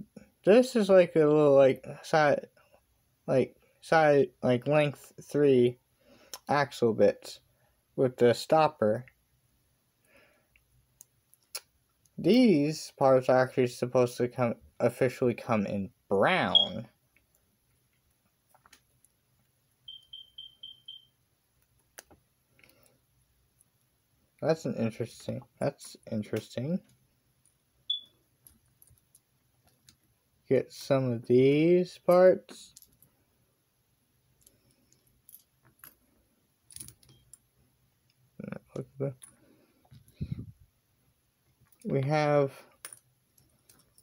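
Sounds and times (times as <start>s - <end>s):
high-pitched electronic beeps: 16.5s - 16.8s, 19.9s - 21.1s, 27.9s - 28.1s.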